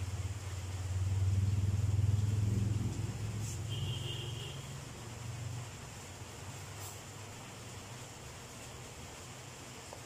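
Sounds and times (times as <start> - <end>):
low engine-like rumble: 0.0 - 10.0.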